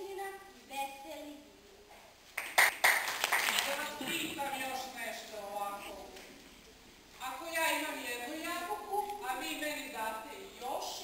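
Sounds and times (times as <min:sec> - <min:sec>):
audience clapping: 0:02.4 - 0:04.0.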